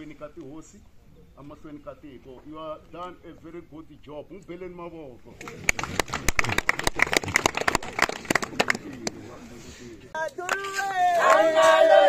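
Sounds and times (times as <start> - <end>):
people clapping hands: 5.4 - 9.2, 10.4 - 12.0.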